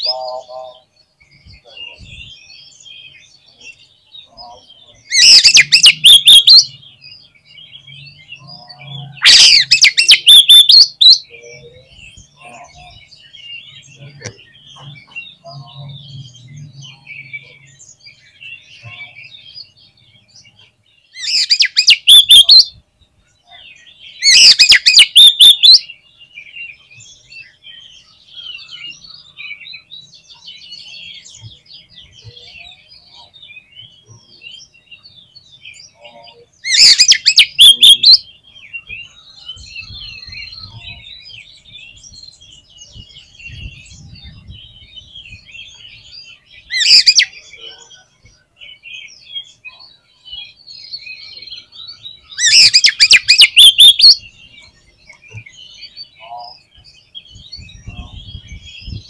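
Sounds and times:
bird chirping and warbling: 0.0s - 59.0s
loud harsh bird song bursts: 0.0s - 59.0s.

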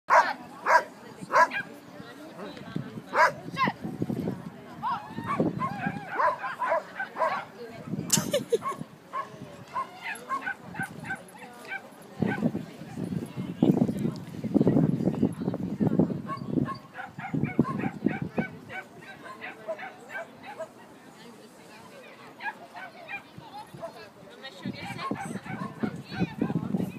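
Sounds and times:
dog barking: 0.1s - 1.7s, 3.2s - 3.4s, 5.3s - 7.5s, 8.6s - 12.4s, 16.3s - 20.7s
people's voices: 0.1s - 26.9s.

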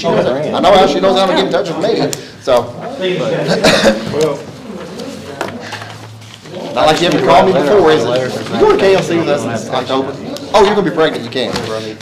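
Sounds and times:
person coughing: 3.5s - 4.2s.

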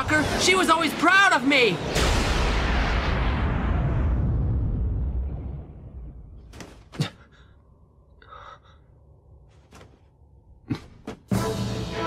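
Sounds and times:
low rumble: 1.8s - 6.5s.

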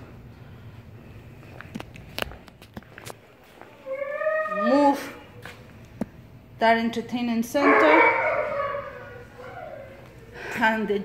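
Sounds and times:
dog whining: 3.8s - 5.2s, 7.6s - 10.3s.

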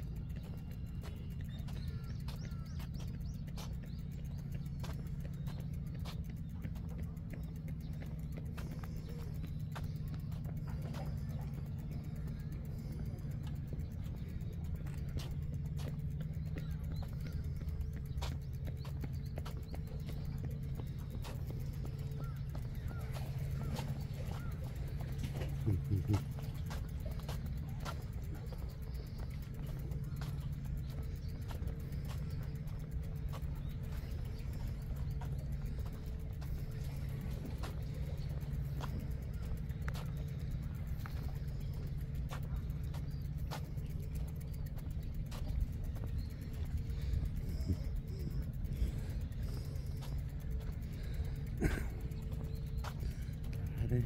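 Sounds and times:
bicycle riding over concrete: 0.0s - 54.0s
light clicks and rattles: 0.0s - 54.0s.

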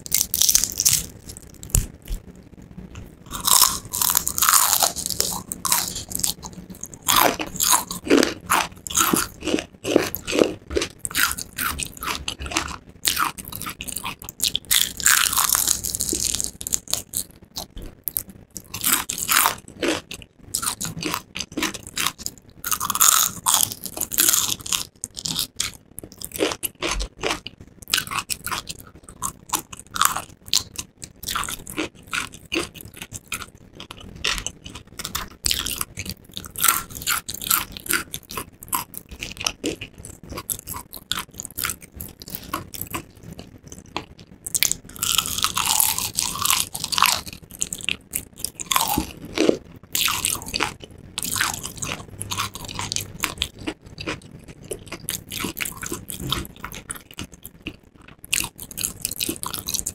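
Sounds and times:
crunchy chewing of fried chicken: 0.0s - 59.9s.

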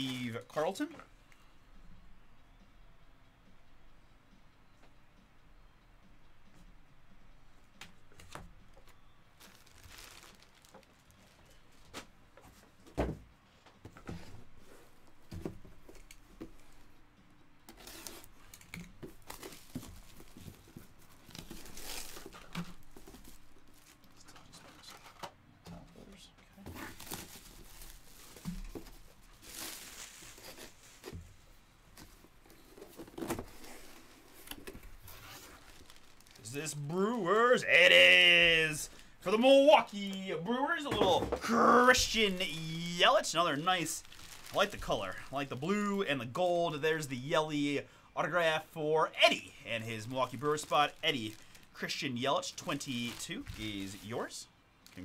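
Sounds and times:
plastic bag tearing: 9.4s - 11.4s, 21.2s - 24.0s, 26.8s - 28.7s, 33.0s - 36.8s, 41.5s - 45.7s, 50.0s - 51.8s, 52.6s - 54.2s
plastic bag crinkling: 9.4s - 11.8s, 19.2s - 24.0s, 26.8s - 31.0s, 32.8s - 36.9s, 41.8s - 45.9s, 49.3s - 55.0s.

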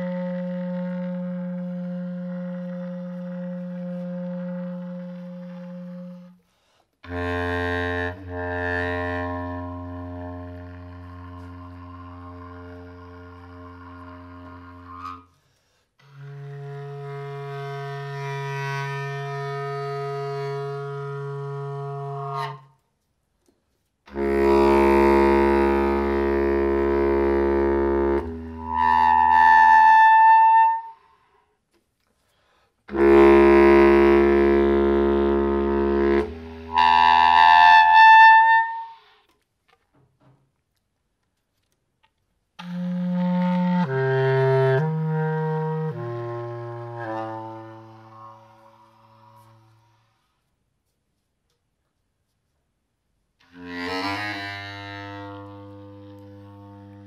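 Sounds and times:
bass clarinet long notes: 0.0s - 6.4s, 7.0s - 15.3s, 16.0s - 22.8s, 24.1s - 31.1s, 32.9s - 39.2s, 42.6s - 50.3s, 53.4s - 57.0s.

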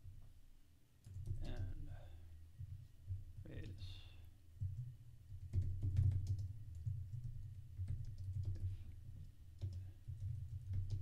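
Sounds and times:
computer keyboard typing: 1.0s - 1.8s, 4.6s - 8.7s, 9.6s - 11.0s.

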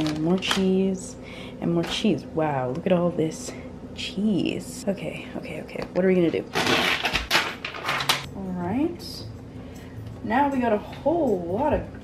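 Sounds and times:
packages and dishes rustling: 0.0s - 0.8s.

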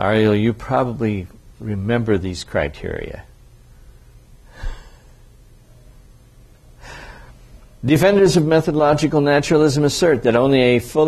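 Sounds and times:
man speaking: 0.0s - 3.3s, 7.8s - 11.0s
faint low hum: 0.0s - 11.0s
man breathing in: 3.8s - 5.3s, 6.8s - 7.4s.

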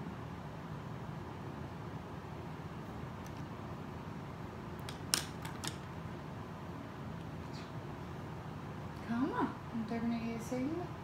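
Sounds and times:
low room hiss: 0.0s - 11.0s
makeup tools clicking: 4.8s - 5.9s.

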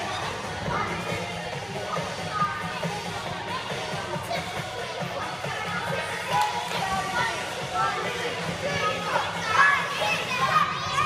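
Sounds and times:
girls calling out and talking: 0.0s - 11.0s.

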